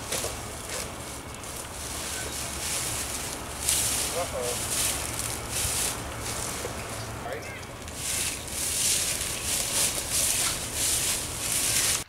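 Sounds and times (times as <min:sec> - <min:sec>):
faint distant voices: 0:00.0 - 0:11.4.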